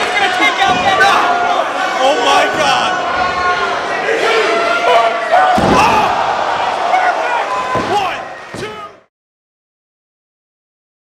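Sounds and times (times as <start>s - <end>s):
people shouting: 0.0s - 9.1s
heavy slams in wrestling ring: 5.5s - 6.4s.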